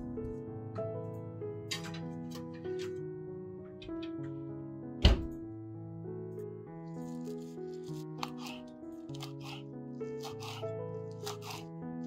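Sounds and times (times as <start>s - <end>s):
background music sustained notes: 0.0s - 12.0s
oven door thunk: 5.0s - 5.4s.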